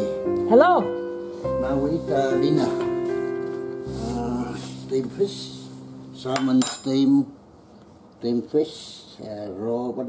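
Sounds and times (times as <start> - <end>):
tableware clinking: 6.3 - 7.1.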